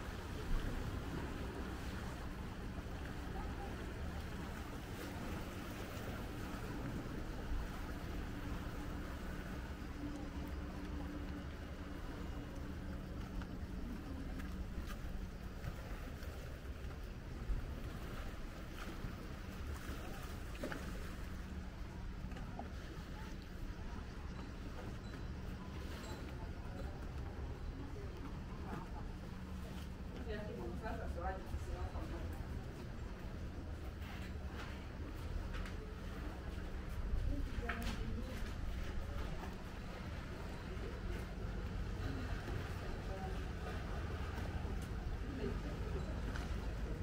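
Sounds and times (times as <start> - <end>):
faint engine hum: 0.0 - 47.0.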